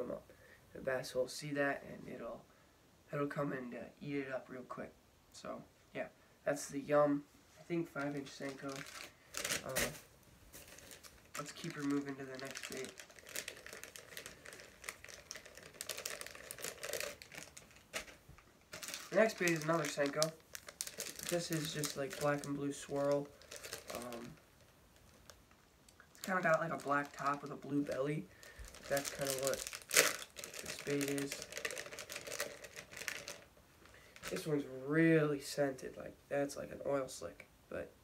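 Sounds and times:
plastic bags crinkling: 7.9s - 34.5s.

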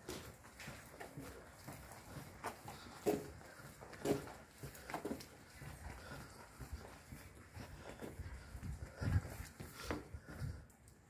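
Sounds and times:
footsteps on hard surface: 0.0s - 10.7s.

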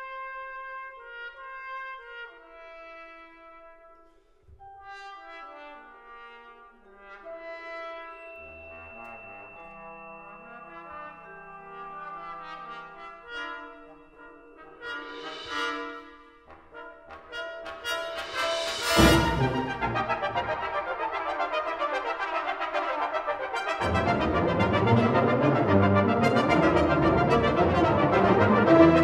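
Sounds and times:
brass band playing chords: 4.8s - 29.0s.

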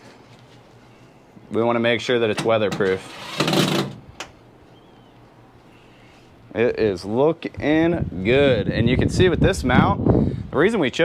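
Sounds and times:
faint background noise: 0.0s - 11.0s
faint high chirp: 4.6s - 6.0s.

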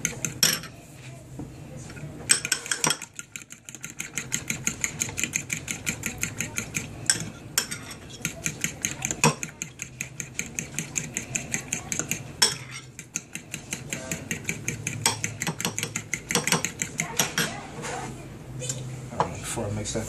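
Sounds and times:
fork whisking eggs in glass bowl: 0.0s - 0.8s, 1.9s - 17.7s
fork knocking on glass bowl: 2.3s - 17.6s.

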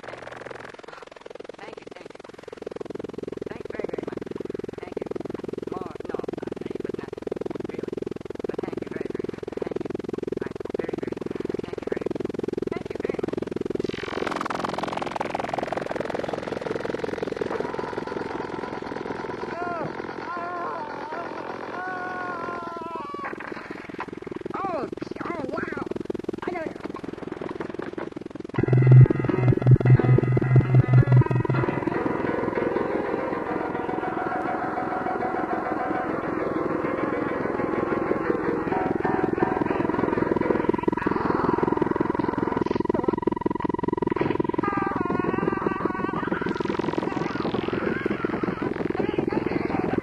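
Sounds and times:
wavering synthesizer tones: 0.0s - 21.7s, 22.5s - 50.0s
buzzing pulsing drone: 0.0s - 50.0s
steady high synth tone: 28.5s - 45.1s.

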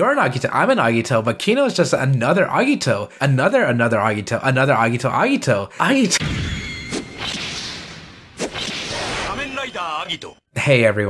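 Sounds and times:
swoosh: 6.2s - 9.7s.

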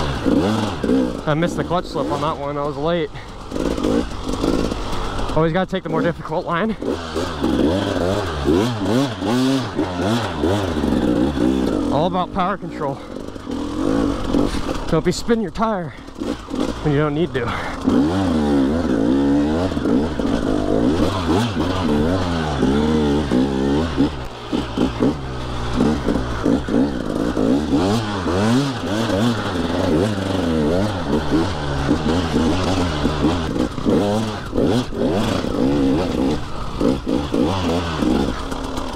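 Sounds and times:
dirt bike engine revving: 0.0s - 38.9s.

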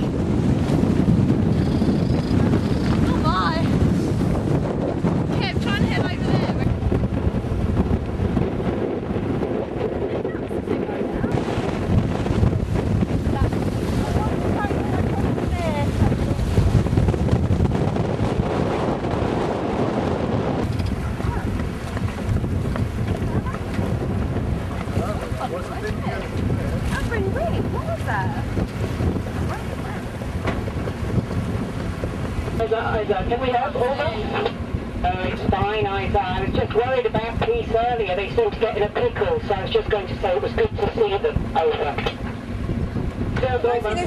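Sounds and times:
choppy water rushing: 0.0s - 44.0s
strong wind buffeting microphone: 0.0s - 44.0s.

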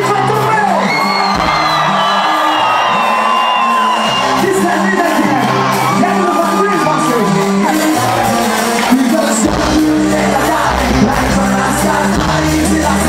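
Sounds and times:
live band playing: 0.0s - 13.0s
audience whooping and cheering: 0.5s - 9.4s.

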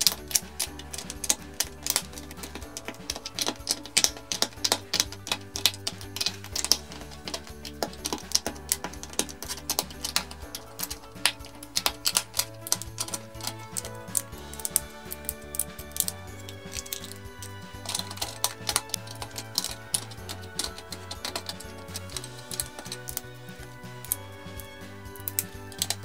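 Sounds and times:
background music: 0.0s - 26.0s
plastic bricks clicking together: 0.0s - 26.0s.

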